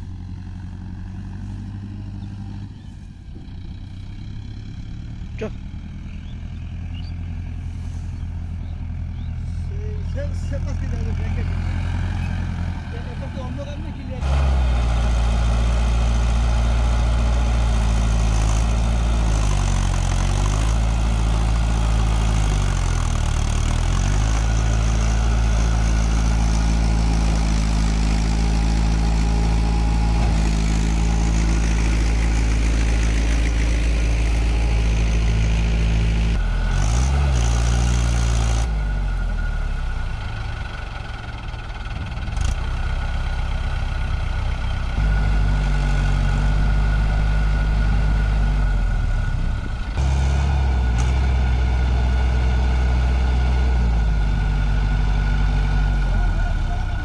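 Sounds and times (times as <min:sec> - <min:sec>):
tractor diesel engine labouring: 0:00.0 - 0:57.0.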